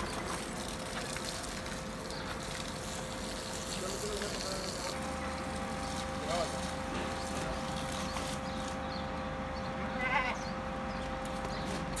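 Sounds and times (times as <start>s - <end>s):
steady hum: 0.0s - 12.0s
goat bleating: 9.9s - 10.5s.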